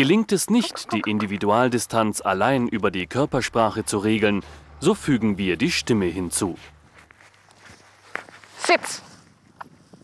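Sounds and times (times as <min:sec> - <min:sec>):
footsteps through long grass: 0:06.6 - 0:10.0.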